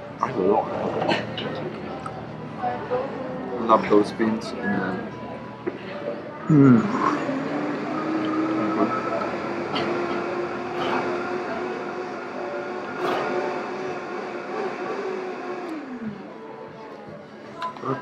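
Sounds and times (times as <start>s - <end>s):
vehicle engine humming: 0.0s - 17.4s.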